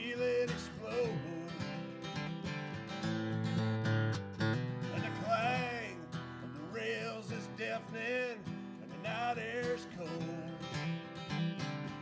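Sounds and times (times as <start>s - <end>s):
man singing: 0.0s - 2.2s, 4.9s - 11.2s
acoustic guitar strumming: 0.0s - 12.0s.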